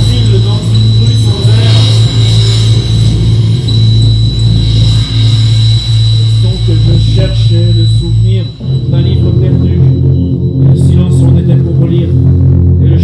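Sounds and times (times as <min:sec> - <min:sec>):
loud low pulsing drone: 0:00.0 - 0:13.0.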